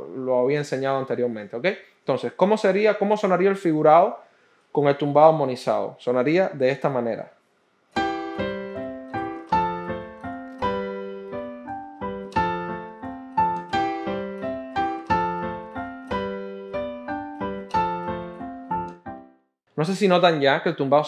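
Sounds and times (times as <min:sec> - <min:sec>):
piano playing syncopated chords: 0:08.0 - 0:19.6.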